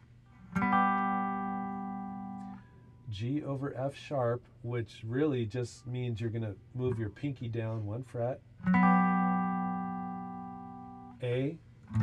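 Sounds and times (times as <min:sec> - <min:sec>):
guitar chord ringing: 0:00.4 - 0:03.5, 0:08.6 - 0:12.0.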